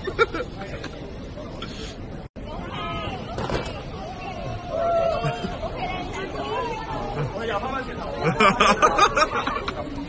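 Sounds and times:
crowd babble: 0.0 - 10.0
people chattering: 0.0 - 10.0.

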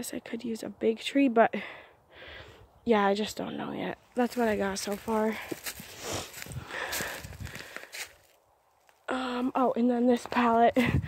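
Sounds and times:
footsteps: 4.1 - 9.0.

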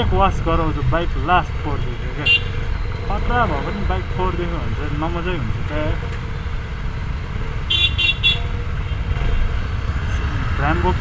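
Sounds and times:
traffic rumble: 0.0 - 11.0
vehicle horn toots: 2.2 - 2.8, 7.7 - 9.0.

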